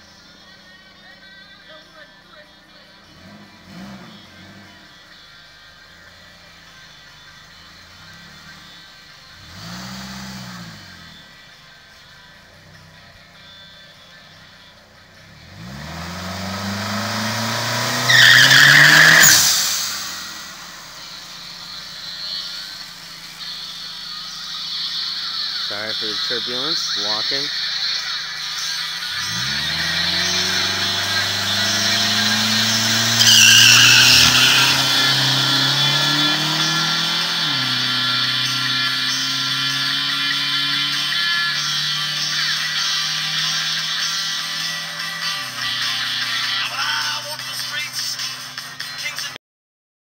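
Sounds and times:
car engine revving: 2.4 - 13.6, 14.2 - 48.9
tyres squealing: 18.0 - 20.5, 29.1 - 39.5.

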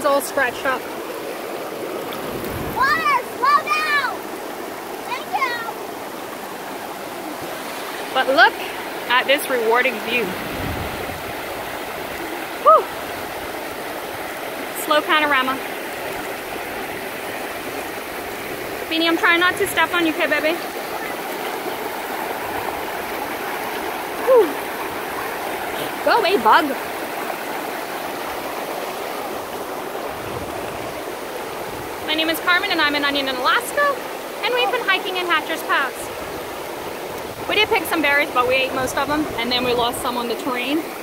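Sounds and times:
river rushing over boulders: 0.0 - 41.0.

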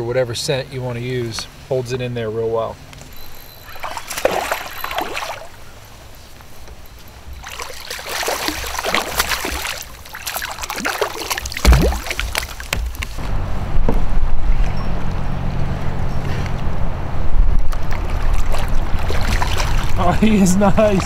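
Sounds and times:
fish splashing at water surface: 3.5 - 5.6, 7.3 - 13.0, 17.7 - 20.0.

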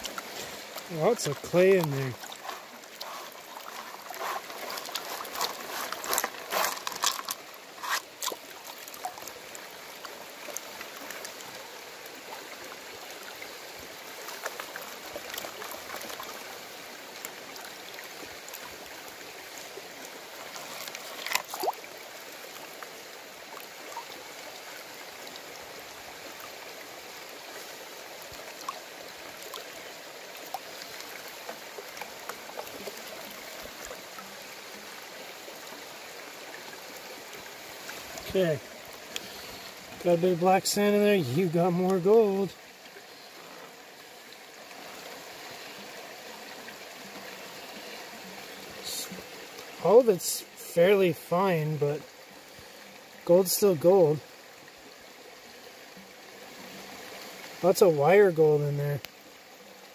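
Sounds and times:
creek water running: 0.0 - 59.9.

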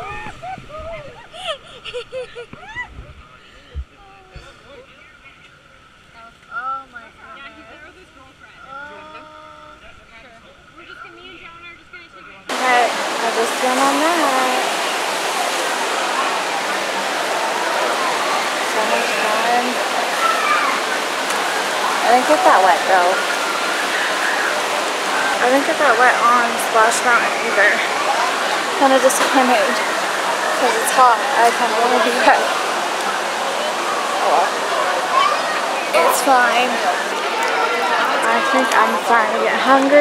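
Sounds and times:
people's voices: 12.5 - 40.0
rushing river rapids: 12.5 - 40.0.

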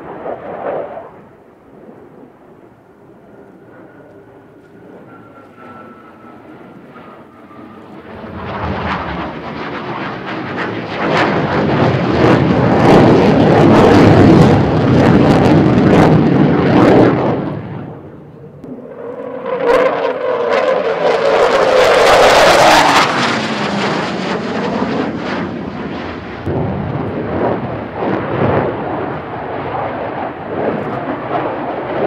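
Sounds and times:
jet fighter roaring: 0.0 - 32.0
jet whine: 0.0 - 32.0.

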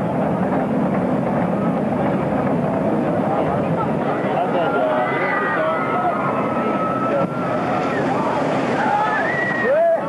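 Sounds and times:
rushing water noise: 0.0 - 10.0
people screaming and shouting: 4.1 - 10.0.

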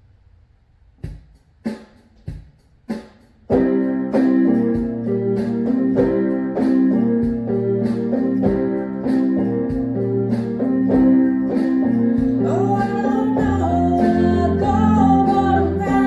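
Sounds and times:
electronic keyboard chords over beat: 3.5 - 16.0.

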